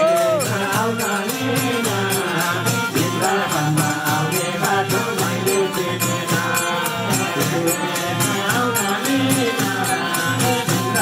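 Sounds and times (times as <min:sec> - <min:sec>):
barrel drum beat: 0:00.0 - 0:11.0
jingling tambourine: 0:00.0 - 0:11.0
voices chanting: 0:00.0 - 0:11.0
harmonium chords: 0:00.4 - 0:11.0.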